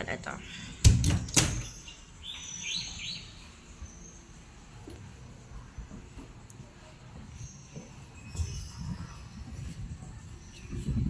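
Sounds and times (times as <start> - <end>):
high bird chirps: 1.6 - 4.3.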